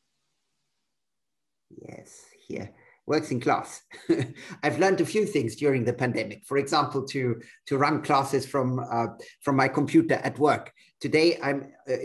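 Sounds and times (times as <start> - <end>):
man speaking: 1.8 - 12.0.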